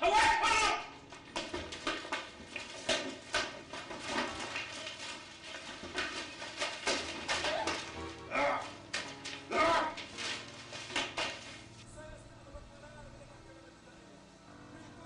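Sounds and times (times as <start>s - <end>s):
loud shout: 0.0s - 0.9s, 9.5s - 10.0s
background music: 0.0s - 15.0s.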